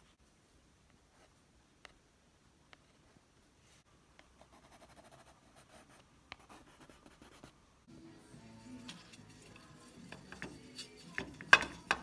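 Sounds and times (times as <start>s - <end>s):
pencil scratching on paper: 4.4s - 7.6s.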